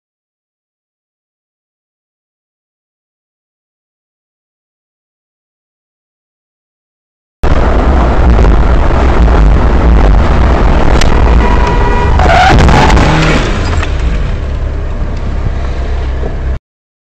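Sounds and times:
car engine and road rumble: 0:07.4 - 0:16.6
noisy burst with squeals: 0:07.5 - 0:14.3.

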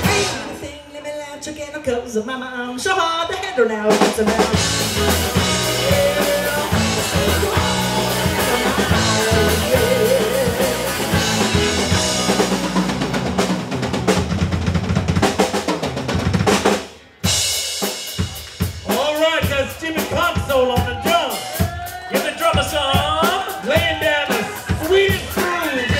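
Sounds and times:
fast drum fill: 0:00.0 - 0:00.6, 0:03.9 - 0:25.9
live rock band playing: 0:00.0 - 0:00.6, 0:03.9 - 0:25.9
person singing: 0:00.0 - 0:01.3, 0:03.1 - 0:12.6.

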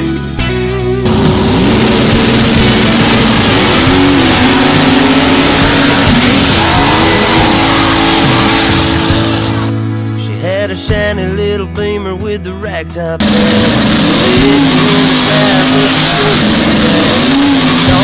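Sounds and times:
race car engine at full throttle: 0:01.0 - 0:09.8, 0:13.2 - 0:18.0.

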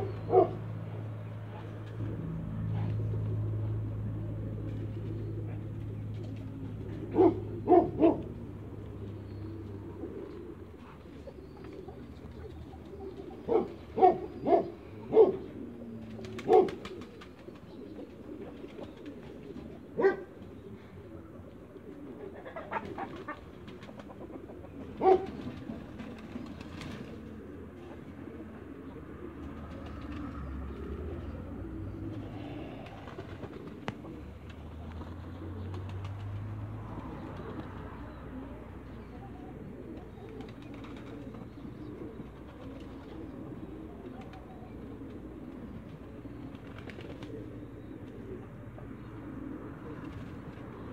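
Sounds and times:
ducks cooing: 0:00.0 - 0:50.9.

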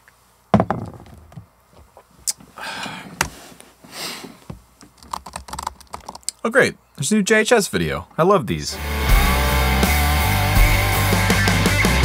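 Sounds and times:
laptop keyboard typing: 0:05.0 - 0:06.3.

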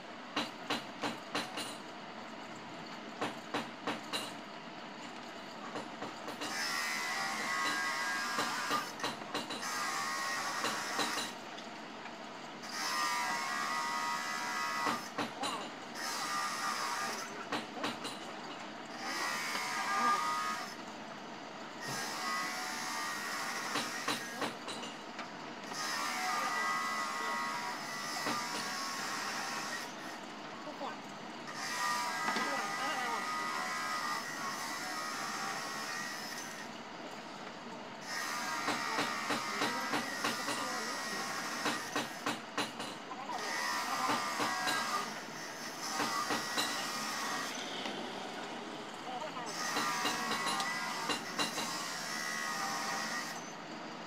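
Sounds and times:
people talking: 0:48.3 - 0:49.6.

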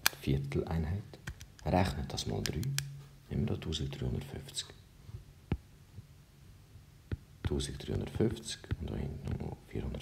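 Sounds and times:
faint low hum: 0:00.0 - 0:10.0
stylus tapping on tablet: 0:05.5 - 0:05.7, 0:07.1 - 0:07.6, 0:08.6 - 0:09.4.

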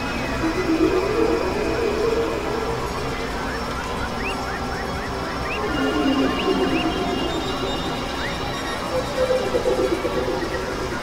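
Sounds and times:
held synthesizer drone tones: 0:00.0 - 0:11.0
wavering mid-pitched tone: 0:00.3 - 0:03.6.

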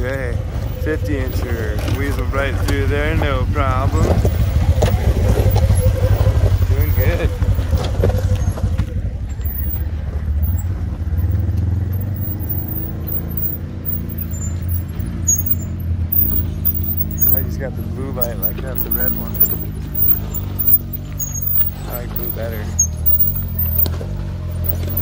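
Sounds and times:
vehicle engines rumbling: 0:00.0 - 0:25.0.

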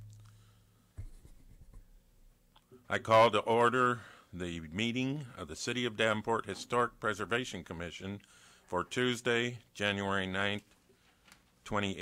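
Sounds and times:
small taps and rustles: 0:01.0 - 0:01.9
man speaking: 0:02.9 - 0:10.7, 0:11.6 - 0:12.0.

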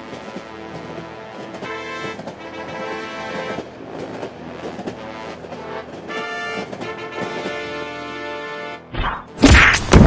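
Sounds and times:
train wheels clattering on rails: 0:00.0 - 0:08.2
background music: 0:00.0 - 0:10.0.

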